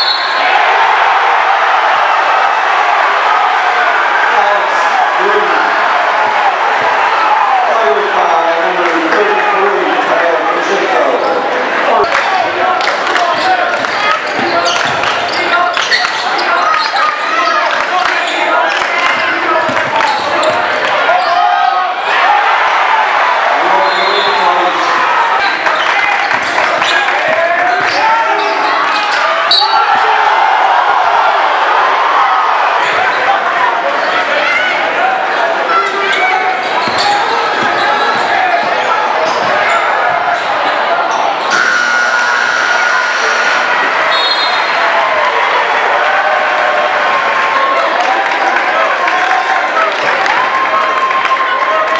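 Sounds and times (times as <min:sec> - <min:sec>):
players and crowd shouting: 0:00.0 - 0:51.9
sneakers squeaking on hardwood: 0:13.3 - 0:17.6, 0:19.1 - 0:21.4, 0:36.6 - 0:39.9
steady horn tone: 0:41.5 - 0:44.0.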